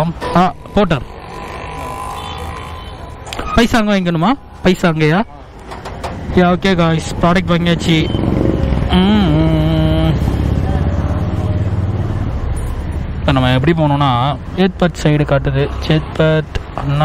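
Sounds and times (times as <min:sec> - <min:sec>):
voices talking: 0:00.0 - 0:12.0
motorcycle engine rumbling: 0:00.0 - 0:14.6.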